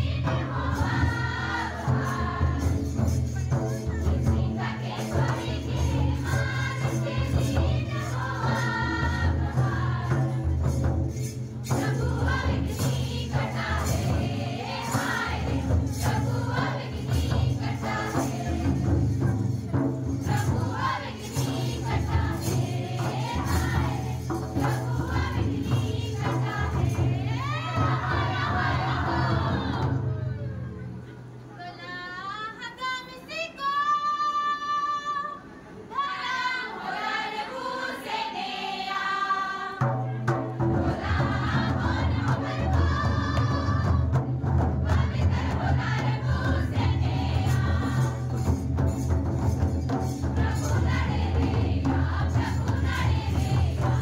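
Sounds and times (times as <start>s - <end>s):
group singing: 0.0s - 3.2s, 4.1s - 11.0s, 11.6s - 30.3s, 35.9s - 54.0s
jingling percussion: 0.0s - 29.8s, 40.3s - 54.0s
pulsing drum beat: 0.0s - 30.1s, 39.7s - 54.0s.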